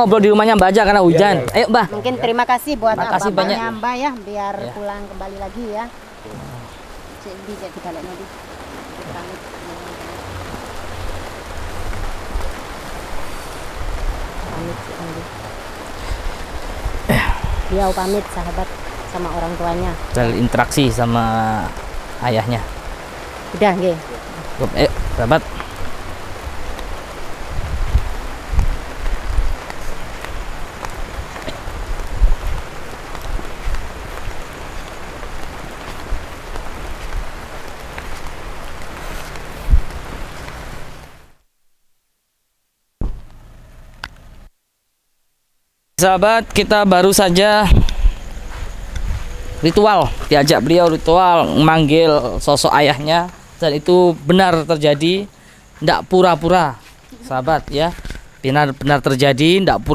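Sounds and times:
rain falling: 0:00.0 - 0:41.5, 0:42.9 - 0:45.0, 0:45.8 - 0:59.9
faint voice murmuring: 0:06.2 - 0:06.9, 0:17.1 - 0:18.3.

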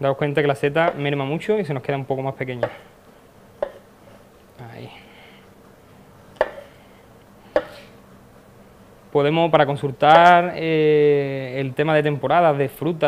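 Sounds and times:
knife blade knocking on cutting board: 0:06.4 - 0:06.7.

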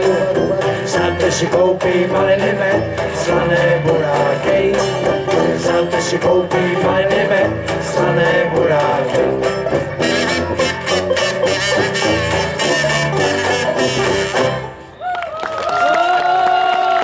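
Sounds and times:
tuba bass line: 0:00.0 - 0:14.8
banjo band playing: 0:00.0 - 0:14.9.

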